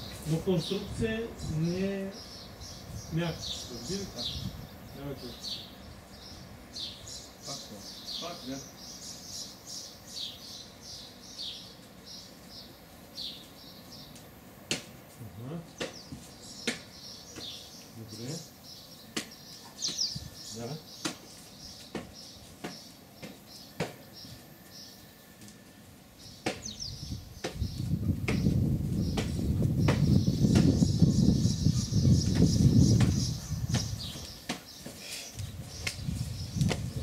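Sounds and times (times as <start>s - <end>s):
bird chirps: 15.7s - 25.6s, 26.2s - 37.0s.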